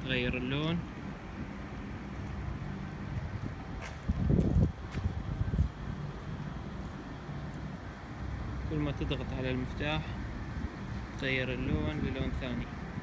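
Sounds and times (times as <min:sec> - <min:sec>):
wind buffeting microphone: 0:00.0 - 0:08.5, 0:09.6 - 0:13.0.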